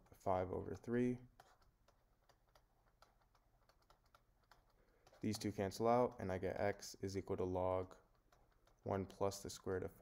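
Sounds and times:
stylus tapping on tablet: 1.3s - 6.6s, 7.9s - 9.8s.

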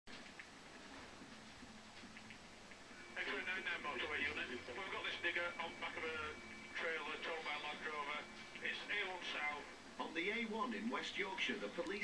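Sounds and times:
television speech: 0.9s - 12.0s.

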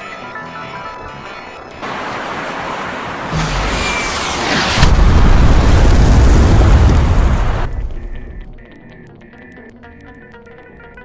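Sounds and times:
loud explosion blast: 4.4s - 8.0s.

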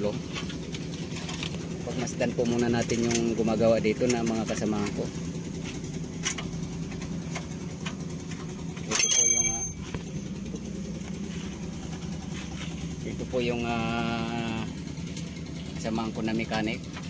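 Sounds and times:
vehicle engine idling: 0.0s - 17.0s.

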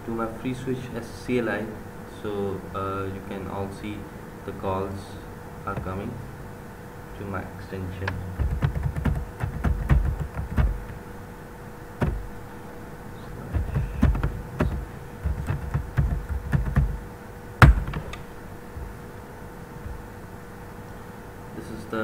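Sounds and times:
computer keyboard typing: 8.4s - 11.0s, 13.4s - 17.0s.

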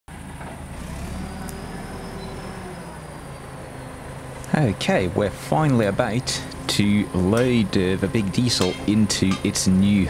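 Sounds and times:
diesel engine idling: 0.1s - 10.0s.

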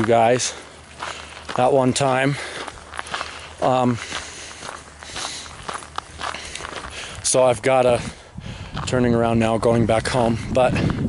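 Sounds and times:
footsteps walking outdoors: 0.0s - 11.0s.

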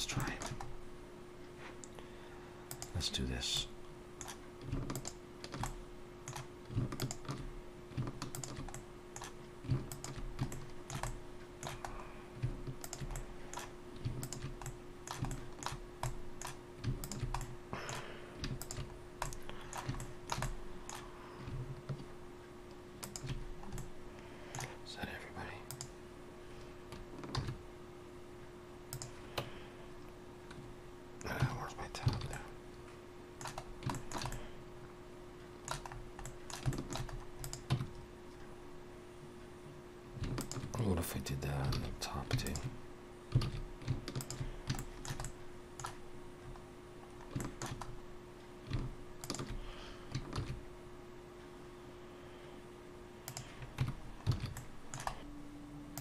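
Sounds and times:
faint hum: 0.0s - 56.0s
keyboard and mouse clicking: 2.7s - 2.9s, 4.2s - 22.0s, 23.0s - 23.9s, 25.7s - 25.9s, 26.9s - 27.6s, 28.9s - 29.5s, 33.4s - 34.4s, 35.7s - 38.0s, 40.2s - 40.7s, 43.3s - 46.6s, 47.2s - 47.9s, 48.6s - 50.6s, 53.2s - 55.2s.

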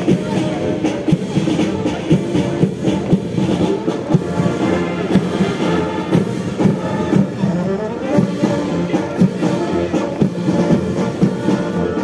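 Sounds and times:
military band playing a march: 0.0s - 12.0s.

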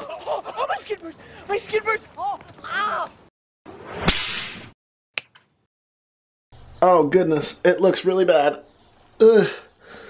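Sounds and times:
whoosh with whip-like crack: 3.7s - 4.8s.

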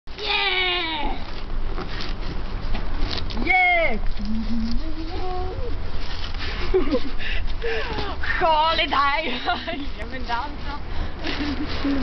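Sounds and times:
background noise: 0.1s - 12.0s.

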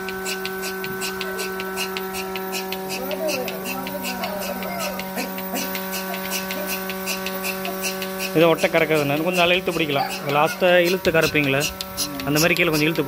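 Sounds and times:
milking machine motor hum: 0.0s - 13.0s
rapid hissing tick: 0.0s - 13.0s.

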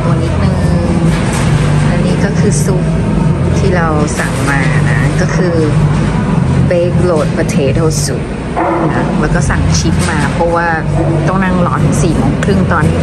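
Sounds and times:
indistinct voices: 0.0s - 13.0s
steady low hum: 0.0s - 13.0s.

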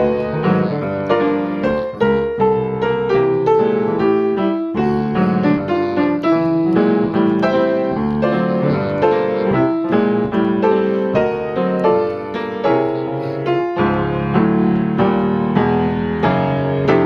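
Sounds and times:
jazz piano playing: 0.0s - 17.0s.

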